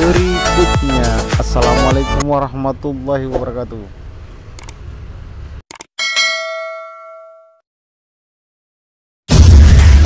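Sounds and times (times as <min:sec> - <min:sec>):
quick clicks: 0:04.6 - 0:04.8
notification bell ding: 0:06.0 - 0:07.6.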